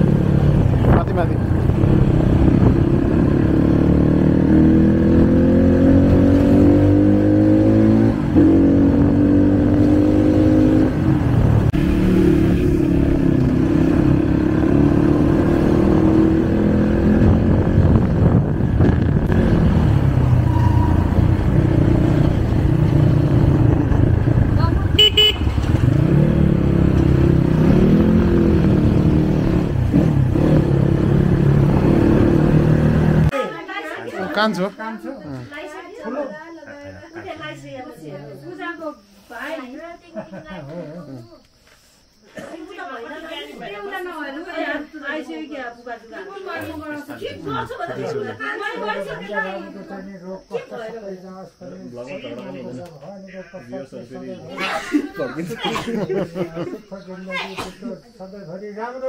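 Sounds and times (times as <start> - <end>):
dirt bike engine revving: 1.4 - 33.3
horn toot: 24.9 - 25.8.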